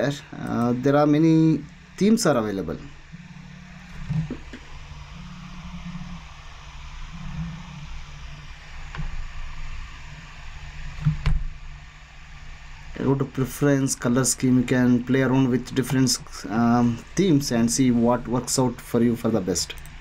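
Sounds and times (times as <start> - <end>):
low hum and hiss: 0.0 - 20.0.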